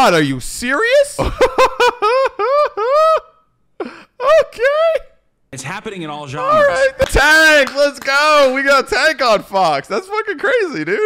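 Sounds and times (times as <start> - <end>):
man laughing high-pitched: 1.2 - 5.1.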